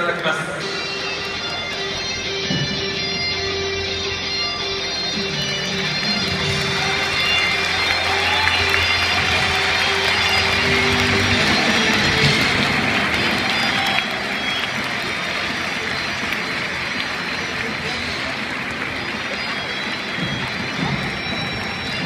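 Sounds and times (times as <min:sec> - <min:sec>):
crowd noise: 0:00.0 - 0:22.0
guitar music over loudspeakers: 0:00.0 - 0:22.0.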